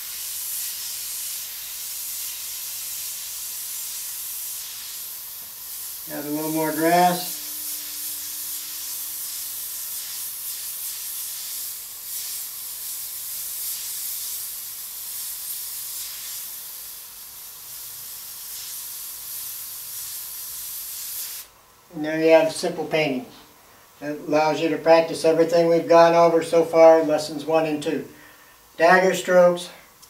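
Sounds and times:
airbrush air hiss: 0:00.0 - 0:30.0.

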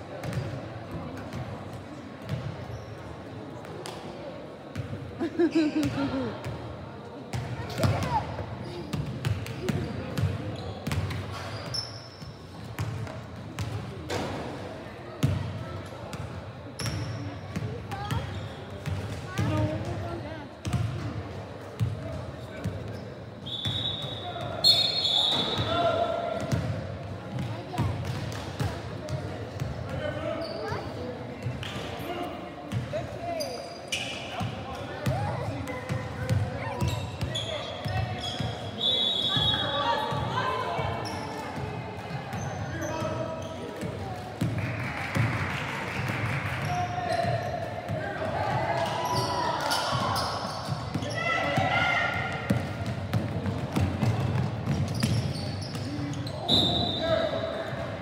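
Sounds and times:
basketballs bouncing on wooden floor: 0:52.4 - 0:55.9.

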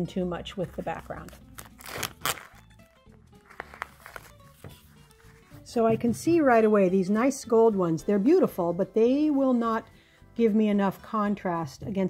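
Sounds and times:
light background music: 0:00.0 - 0:12.0
cellophane wrap crinkling: 0:01.1 - 0:05.4.

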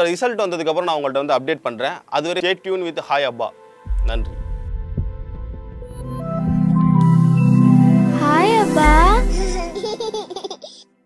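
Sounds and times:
logo jingle music: 0:03.6 - 0:10.4
small child giggling: 0:09.3 - 0:10.8.

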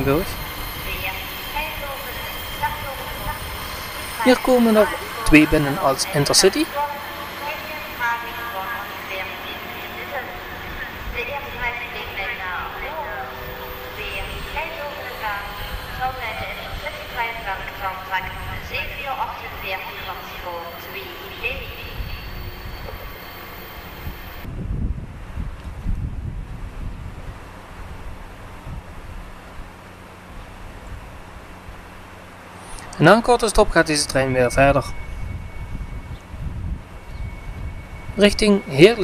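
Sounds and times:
indistinct voices: 0:00.0 - 0:24.5, 0:32.7 - 0:36.2, 0:37.0 - 0:39.0
electric train arriving: 0:00.0 - 0:24.7, 0:29.2 - 0:39.0
low train rumble: 0:00.0 - 0:39.0.

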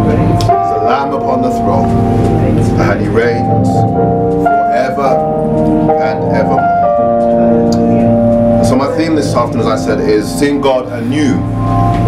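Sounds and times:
man speaking into a microphone: 0:00.0 - 0:01.9, 0:02.7 - 0:03.9, 0:04.6 - 0:06.8, 0:08.6 - 0:11.6
held keyboard chords: 0:00.0 - 0:12.0.

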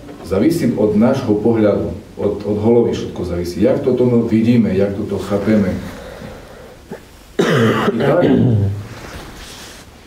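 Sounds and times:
man clearing throat: 0:06.9 - 0:08.7.

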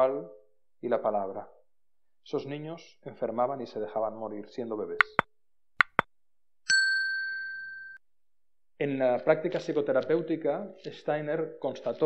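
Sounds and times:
short sharp clicks: 0:05.0 - 0:05.2
bright bell ding: 0:06.7 - 0:08.0.

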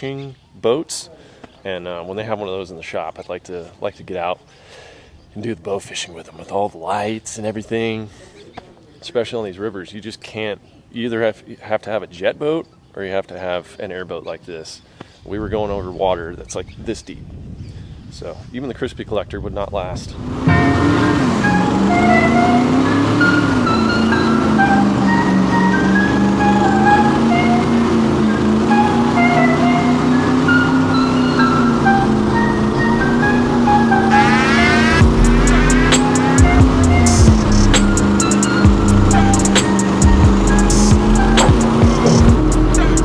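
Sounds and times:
airboat engine and propeller drone: 0:20.4 - 0:35.6
background music with drum beat: 0:35.0 - 0:43.0.

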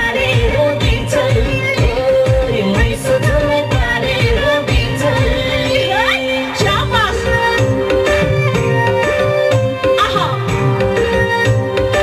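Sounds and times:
amplified backing music with beat: 0:00.0 - 0:12.0
woman singing into a microphone: 0:00.0 - 0:12.0.

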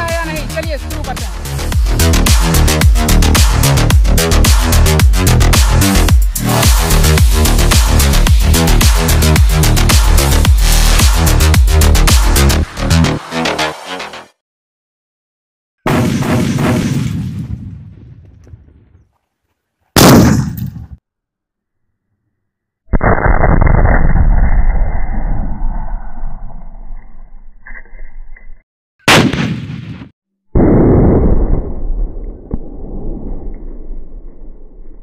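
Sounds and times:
slowed-down muffled blast: 0:29.1 - 0:35.0.

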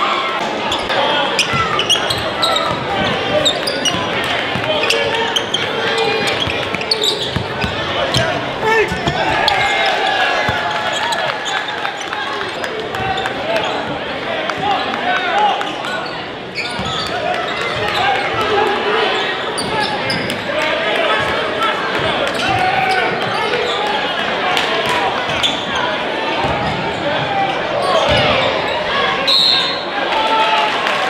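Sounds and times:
crowd chatter: 0:00.0 - 0:31.0.

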